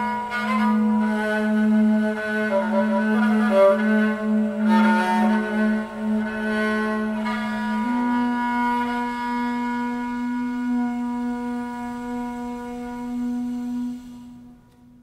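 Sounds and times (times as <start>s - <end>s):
duduk holding low note: 0.0s - 14.6s
bowed string sustained notes: 2.0s - 6.6s.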